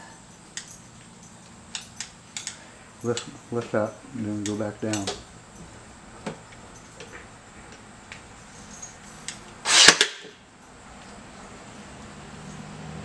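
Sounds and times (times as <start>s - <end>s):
tool handling clicks: 0.5s - 3.8s, 4.4s - 5.3s, 6.2s - 10.4s
nail gun firing: 9.7s - 10.4s.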